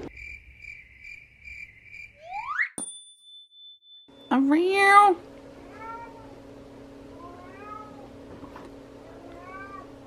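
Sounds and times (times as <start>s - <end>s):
cat meowing softly: 5.6s - 6.4s, 7.1s - 8.1s, 9.0s - 9.9s.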